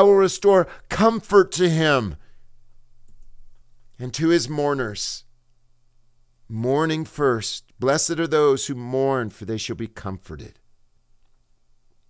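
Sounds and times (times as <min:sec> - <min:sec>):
man speaking: 0:00.0 - 0:02.2, 0:04.0 - 0:05.3, 0:06.5 - 0:10.6
low steady hum: 0:00.0 - 0:12.0
faint small clicks: 0:11.2 - 0:12.0.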